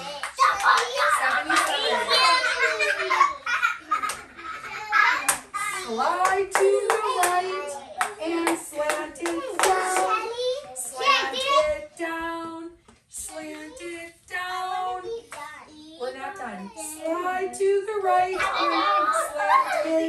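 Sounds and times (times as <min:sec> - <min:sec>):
young children chattering: 0:00.0 - 0:06.0, 0:15.1 - 0:20.0.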